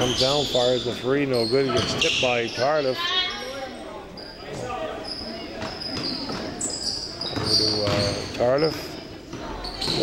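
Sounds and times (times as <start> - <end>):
sneakers squeaking: 0.0 - 10.0
basketball bouncing: 7.3 - 8.2.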